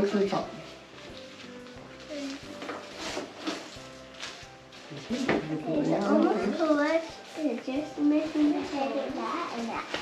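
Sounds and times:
cloth rustling: 0.0 - 10.0
faint music: 0.0 - 10.0.

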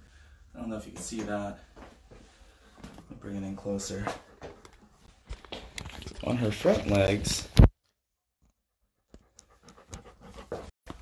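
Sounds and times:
dog panting: 8.8 - 10.8.

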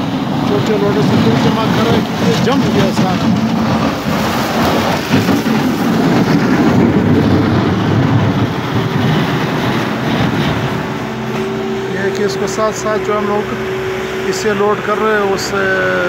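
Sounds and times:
diesel engine rumbling: 0.0 - 16.0
bucket scraping snow and rubble: 0.6 - 14.5.

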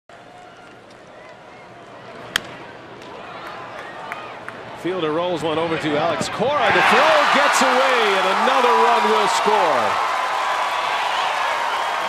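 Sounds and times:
ballpark crowd murmur: 0.1 - 10.4.

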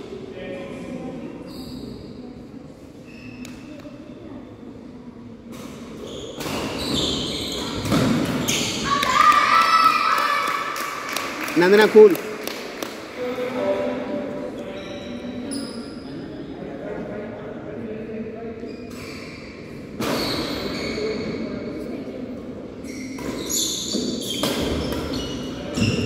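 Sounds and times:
indistinct echoing voices: 8.8 - 18.6.

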